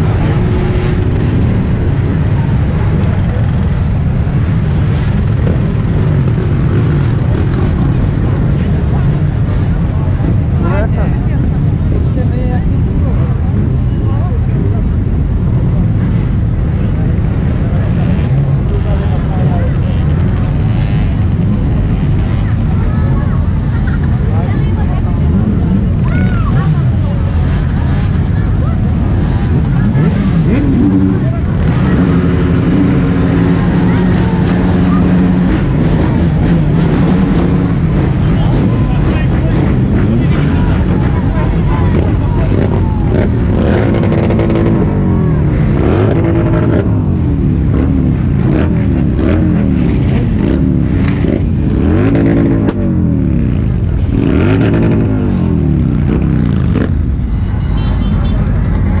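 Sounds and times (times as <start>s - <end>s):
crowd chatter: 0.0s - 59.0s
motorcycle engines revving: 0.0s - 59.0s.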